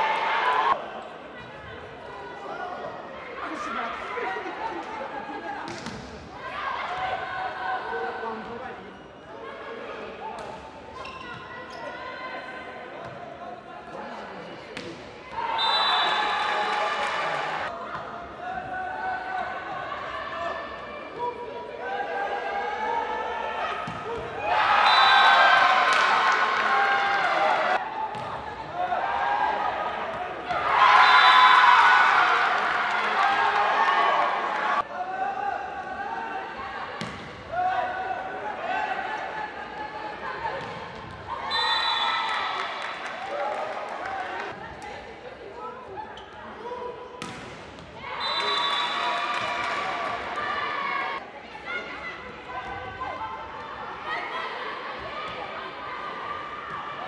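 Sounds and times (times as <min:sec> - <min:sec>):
players and spectators calling out: 0:00.0 - 0:47.2, 0:47.9 - 0:57.0
voices in an arena: 0:00.0 - 0:57.0.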